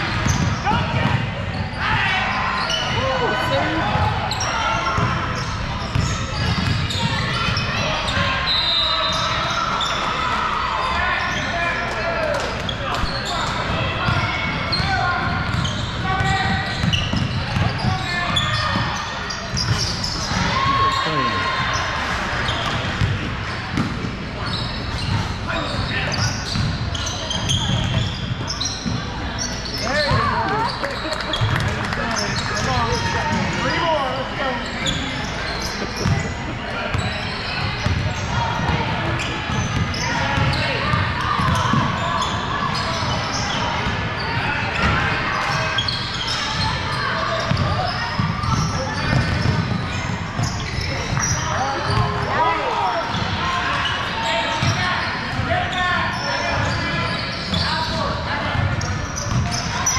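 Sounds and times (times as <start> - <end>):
overlapping indistinct voices: 20.3 - 21.6
basketballs bouncing on hardwood: 47.5 - 49.8.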